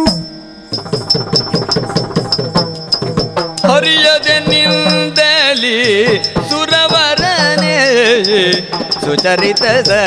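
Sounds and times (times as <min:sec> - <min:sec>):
fast drum strokes: 0:00.0 - 0:10.0.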